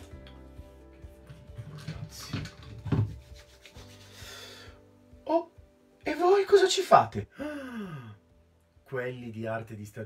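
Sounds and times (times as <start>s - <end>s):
rubbing and rustling at a desk: 0.0s - 4.2s.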